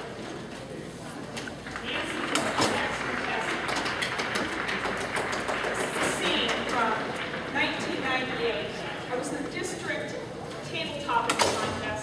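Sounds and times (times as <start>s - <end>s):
steady hiss of room noise: 0.0s - 12.0s.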